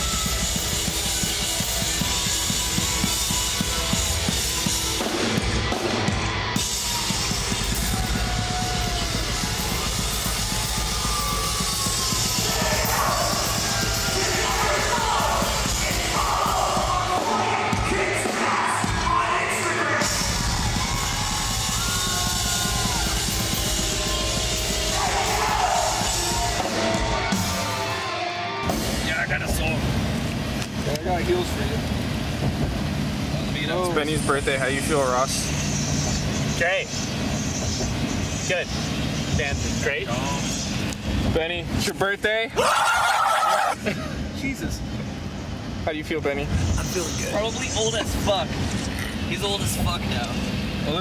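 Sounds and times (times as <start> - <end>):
fast drum beat: 0.0 - 27.8
heavy rock music: 0.0 - 29.8.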